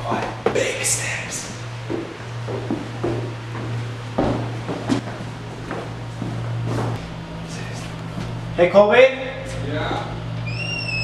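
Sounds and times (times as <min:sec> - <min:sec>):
footsteps: 0:01.4 - 0:08.4.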